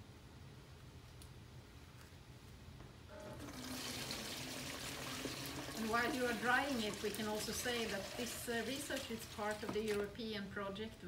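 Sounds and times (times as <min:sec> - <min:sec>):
liquid pouring between buckets: 0:03.2 - 0:10.1.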